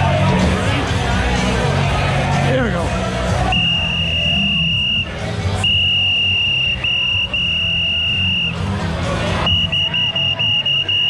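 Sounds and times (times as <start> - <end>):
background music: 0.0 - 11.0
high steady whistle-like tone: 3.5 - 8.7, 9.4 - 11.0.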